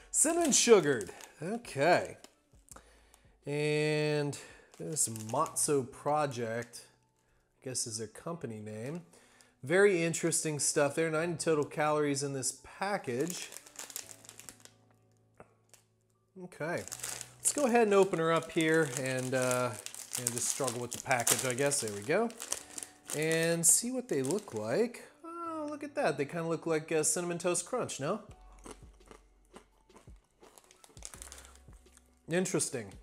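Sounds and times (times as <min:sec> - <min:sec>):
snack bag crinkling: 0:00.0 - 0:02.4, 0:04.3 - 0:05.8, 0:13.0 - 0:14.8, 0:16.7 - 0:24.8, 0:28.6 - 0:32.2.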